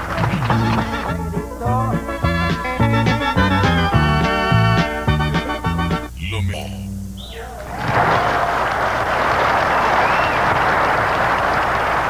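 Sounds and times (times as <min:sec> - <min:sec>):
audience applauding: 0:00.0 - 0:01.2, 0:07.6 - 0:12.0.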